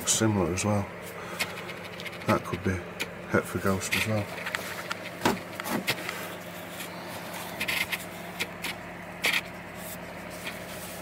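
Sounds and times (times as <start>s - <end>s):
steady low hum: 0.0s - 11.0s
gloved hands rustling substrate: 9.4s - 11.0s.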